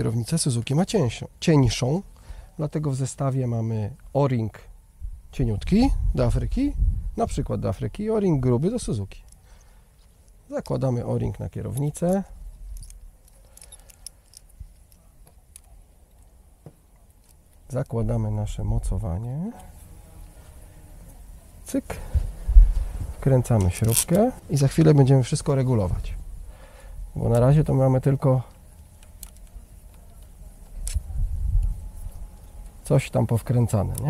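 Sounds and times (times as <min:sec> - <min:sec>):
small handling clicks: 0:11.6 - 0:18.0, 0:23.5 - 0:25.0, 0:28.5 - 0:32.8.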